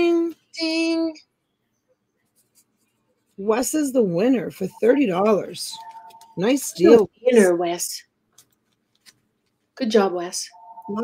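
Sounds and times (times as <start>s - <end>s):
faint scratches: 2.2s - 6.6s.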